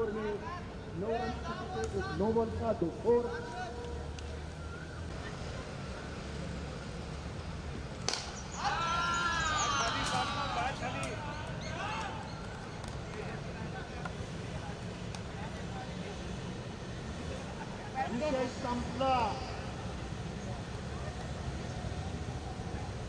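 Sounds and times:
bat hitting ball: 0:08.0 - 0:08.4
people shouting and cheering: 0:08.5 - 0:12.4.

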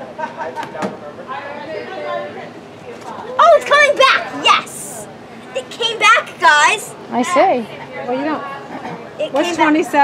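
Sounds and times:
child calling out: 0:03.4 - 0:05.0.

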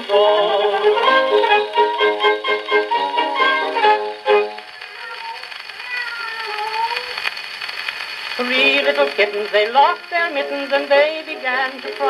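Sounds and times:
record surface hiss: 0:00.0 - 0:12.0.

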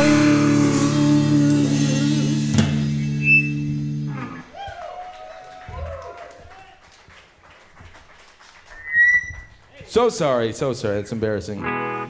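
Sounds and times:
high-pitched squeal: 0:02.9 - 0:04.4, 0:08.7 - 0:09.5.

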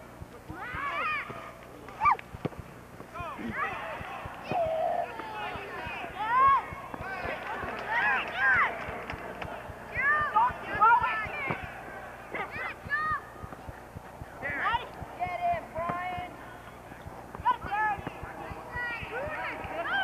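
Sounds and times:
players shouting: 0:03.1 - 0:20.0.

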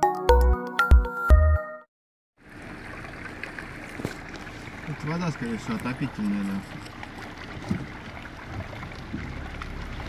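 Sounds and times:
rushing floodwater: 0:02.5 - 0:10.0.

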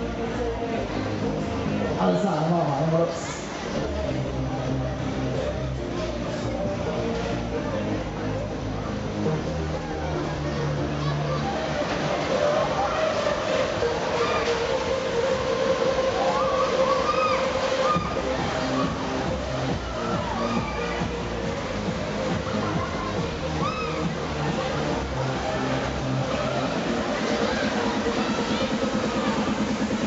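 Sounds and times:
fairground ride sleds rushing: 0:00.0 - 0:30.0.

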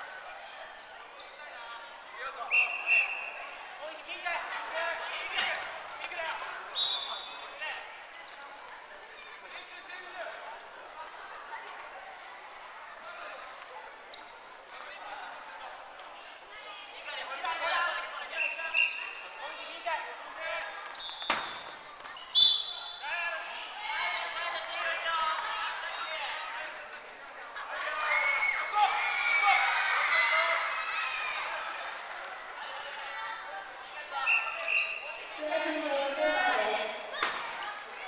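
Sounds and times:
players shouting in gymnasium: 0:00.0 - 0:38.0
sneakers squeaking: 0:06.7 - 0:08.9, 0:13.0 - 0:14.5, 0:20.8 - 0:23.0, 0:24.0 - 0:25.0, 0:34.2 - 0:35.8.

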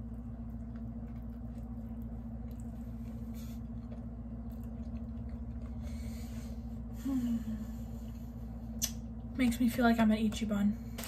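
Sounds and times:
soft chewing: 0:00.0 - 0:07.0
steady low hum: 0:00.0 - 0:11.0.

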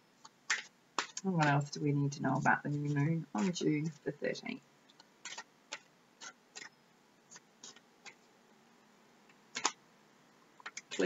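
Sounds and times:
cards being shuffled: 0:00.5 - 0:01.6, 0:04.9 - 0:06.7, 0:09.5 - 0:09.8.

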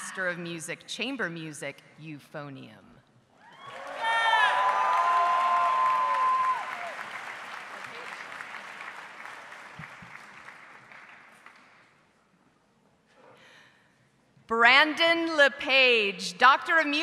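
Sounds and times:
cheers and whoops: 0:03.4 - 0:07.2
audience applauding: 0:03.6 - 0:12.0.

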